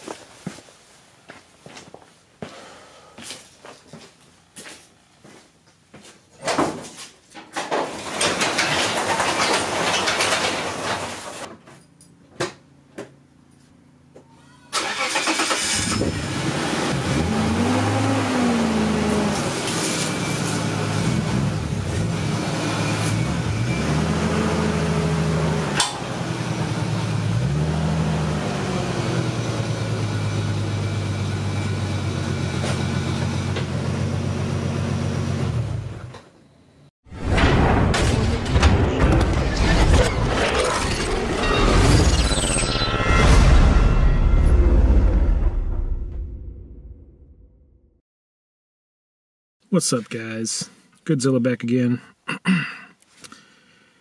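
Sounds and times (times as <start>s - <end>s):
garage door rollers rumbling: 7.6s - 11.5s
car engine idling and revving: 15.2s - 36.2s.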